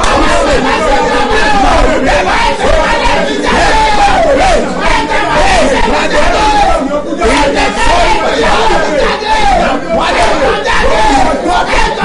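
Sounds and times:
people shouting prayer: 0:00.0 - 0:12.0.

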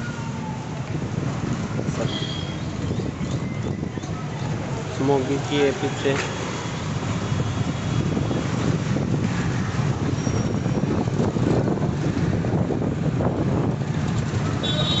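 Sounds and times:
street noise rumble: 0:00.0 - 0:15.0.

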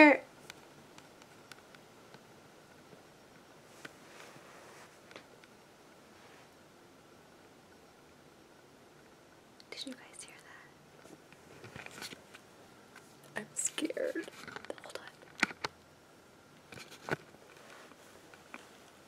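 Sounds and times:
woman whispering: 0:09.7 - 0:10.8, 0:13.4 - 0:15.2.

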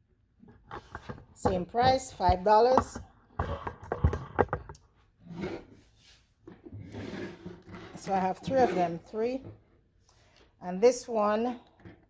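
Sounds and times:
bottles scraping on wooden tabletop: 0:00.5 - 0:09.4.

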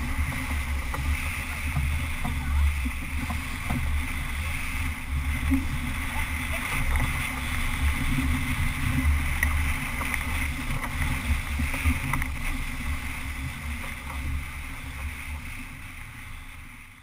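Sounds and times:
wind buffeting microphone: 0:00.0 - 0:16.9
rushing water: 0:00.0 - 0:17.0.

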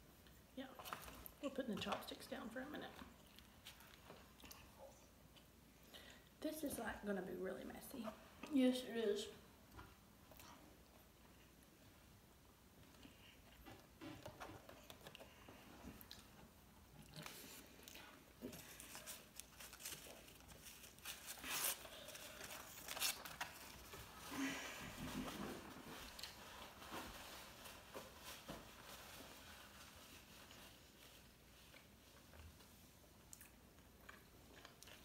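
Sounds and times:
chewing: 0:03.2 - 0:05.5, 0:14.7 - 0:21.0, 0:33.2 - 0:35.0.

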